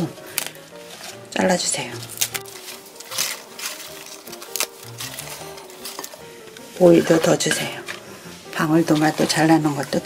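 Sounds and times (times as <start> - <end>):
spinach leaves torn by hand: 0.0 - 6.3
background music: 0.0 - 10.0.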